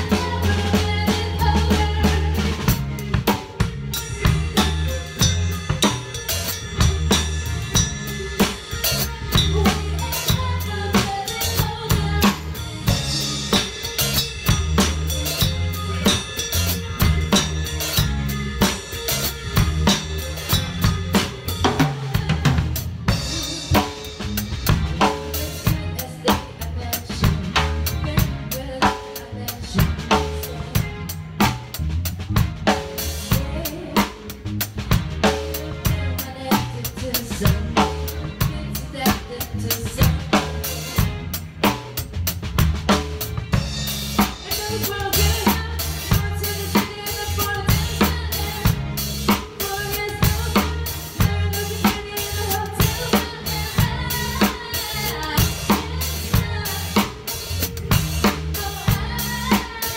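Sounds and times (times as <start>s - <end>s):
backing song with bass line: 0.0s - 59.9s
drum kit groove: 0.0s - 59.9s.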